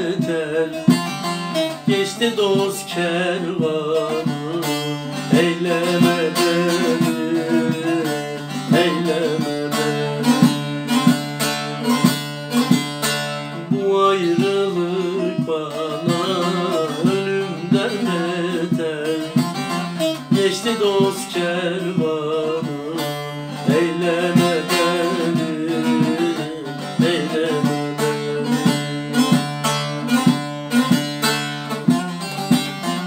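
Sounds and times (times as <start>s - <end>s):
plucked long-necked lute melody: 0.0s - 33.0s.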